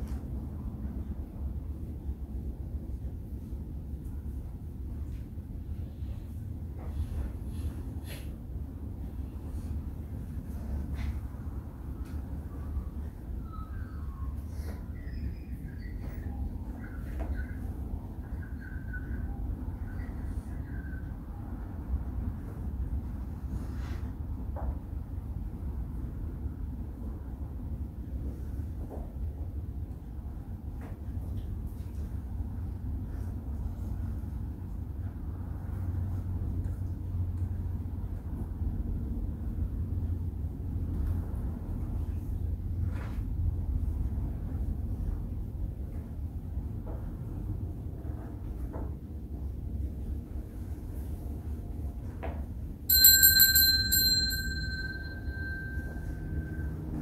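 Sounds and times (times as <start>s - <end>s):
hand bell ringing: 52.9s - 57.0s.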